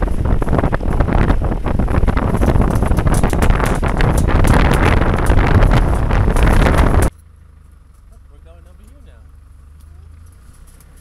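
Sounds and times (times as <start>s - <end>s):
wind buffeting microphone: 0.0s - 7.1s
vehicle rumbling on dirt track: 0.0s - 11.0s.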